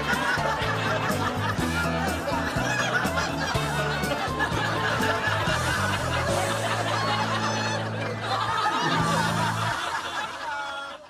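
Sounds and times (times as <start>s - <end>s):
people laughing: 0.0s - 11.0s
upbeat comedy music: 0.0s - 11.0s.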